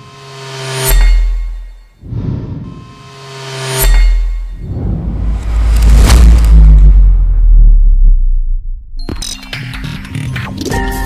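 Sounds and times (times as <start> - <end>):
deep rumble: 4.6 - 9.1
rushing whoosh: 4.7 - 8.9.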